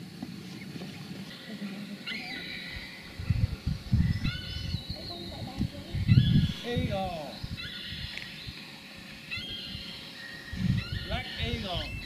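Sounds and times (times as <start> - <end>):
bird calling: 0.0 - 12.0
wind rumble on microphone: 2.4 - 12.0.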